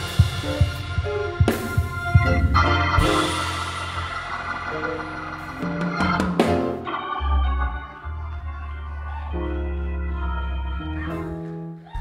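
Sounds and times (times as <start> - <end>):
sharp hits: 0.0 - 8.0
deep bass note: 0.0 - 10.9
organ playing sustained chords: 0.0 - 11.8.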